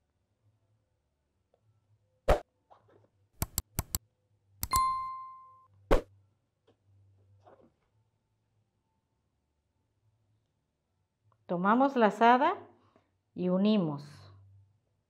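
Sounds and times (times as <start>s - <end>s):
clicks: 3.4s - 4.0s
short bell ding: 4.7s - 5.6s.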